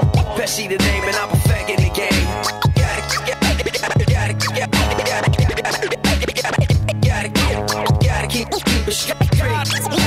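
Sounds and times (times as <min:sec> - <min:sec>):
hip-hop beat: 0:00.0 - 0:10.0
turntable record scratches: 0:00.0 - 0:10.0.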